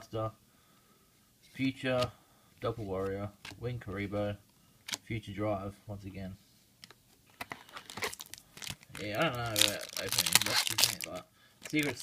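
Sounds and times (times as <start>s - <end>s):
foil wrapper crinkling and tearing: 7.4s - 12.0s.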